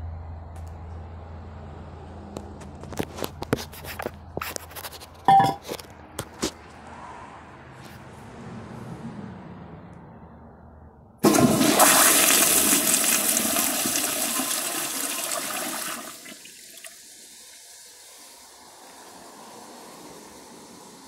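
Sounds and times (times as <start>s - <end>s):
toilet flushing: 11.2s - 19.0s
cistern refill hiss: 11.2s - 21.0s.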